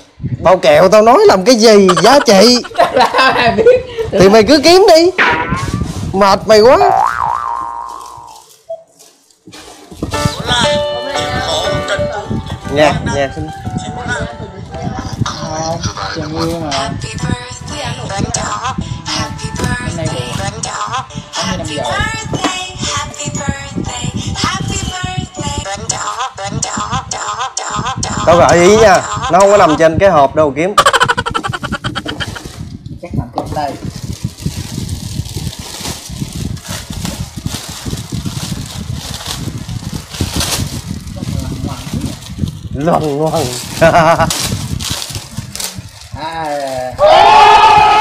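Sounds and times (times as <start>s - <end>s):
wobbling comedy tone: 6.8s - 8.4s, 30.8s - 32.4s.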